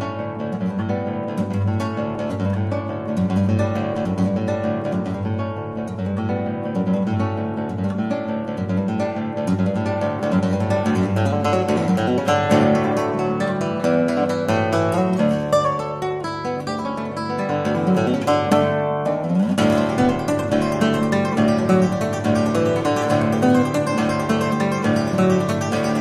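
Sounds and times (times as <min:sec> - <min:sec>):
fingerstyle nylon-string guitar: 0:00.0 - 0:26.0.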